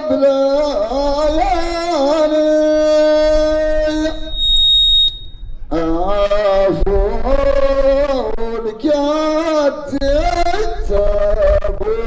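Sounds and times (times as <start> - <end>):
man singing a long note: 0.0 - 4.4, 5.7 - 12.0
microphone feedback whistle: 1.0 - 7.7.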